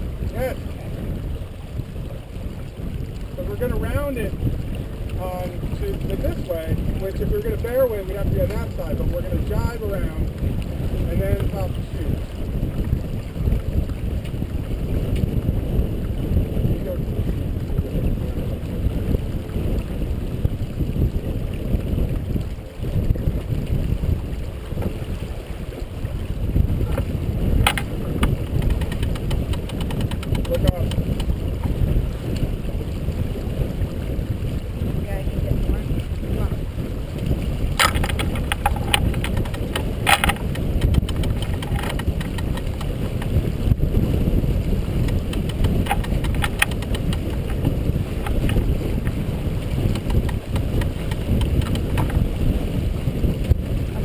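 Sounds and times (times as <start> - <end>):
water rushing past hull: 0.0 - 54.0
wind buffeting microphone: 0.0 - 54.0
winch clicking: 27.6 - 31.3, 37.8 - 43.3, 45.0 - 48.7, 49.8 - 52.2.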